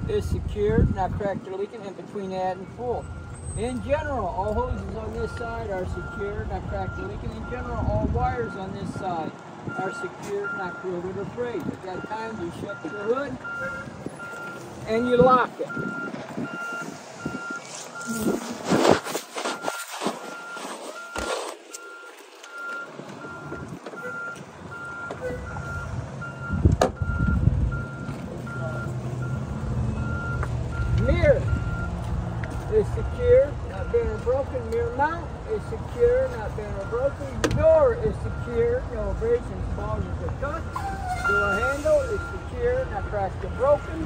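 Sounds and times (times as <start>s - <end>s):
heavy vehicle engine rumbling: 0.0s - 44.0s
truck backup alarm beeping: 0.0s - 44.0s.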